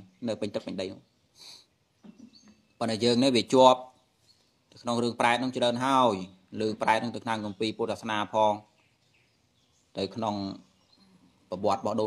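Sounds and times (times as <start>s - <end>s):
man preaching: 2.8s - 3.9s, 4.8s - 8.7s, 10.0s - 10.6s, 11.5s - 12.0s.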